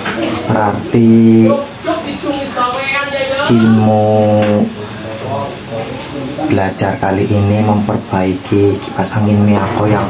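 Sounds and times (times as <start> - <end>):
man speaking: 0.4 - 1.6, 3.5 - 10.0.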